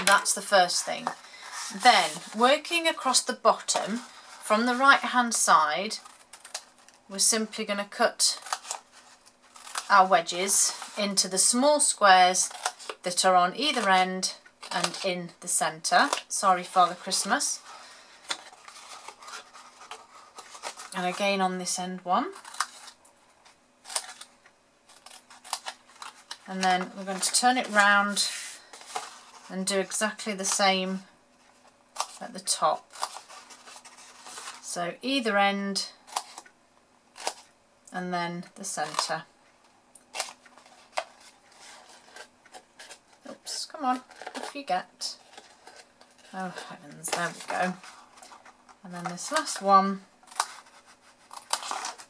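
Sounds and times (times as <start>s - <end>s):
paper rustling: 0.0s - 7.0s, 16.0s - 21.2s, 24.9s - 30.8s, 31.4s - 34.7s, 40.1s - 52.0s.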